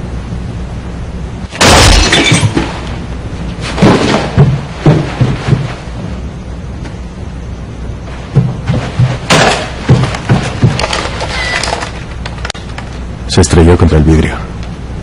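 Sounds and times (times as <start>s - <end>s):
dull low thumps: 3.8s - 10.8s.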